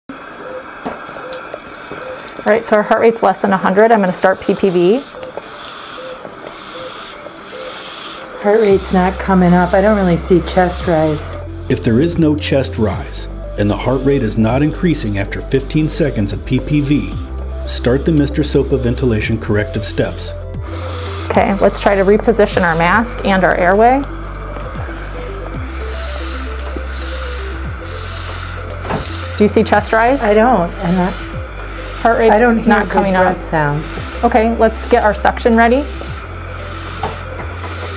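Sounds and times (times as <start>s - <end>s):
equipment hiss: 0.1s - 37.9s
melodic background music: 0.2s - 37.9s.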